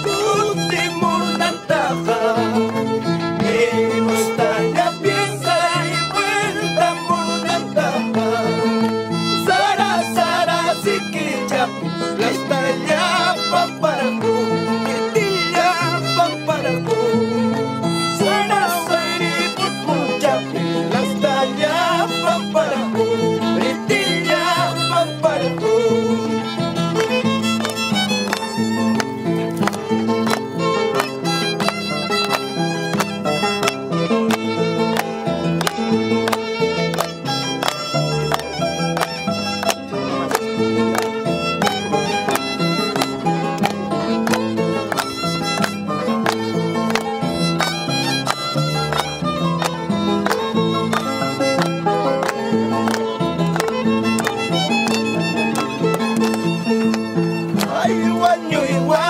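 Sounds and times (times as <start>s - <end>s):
violin melody: 0.0s - 59.0s.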